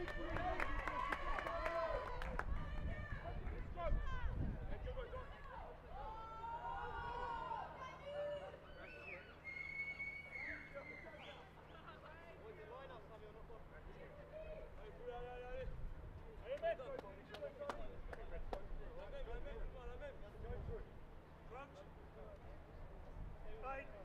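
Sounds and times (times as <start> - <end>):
referee's whistle: 8.7 - 11.5
sharp claps: 16.5 - 18.7.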